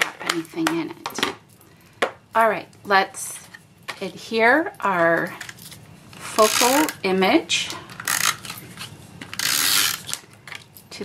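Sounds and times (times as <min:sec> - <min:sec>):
tape runner ratcheting: 0:06.4 - 0:07.0, 0:08.0 - 0:08.6, 0:09.3 - 0:10.2.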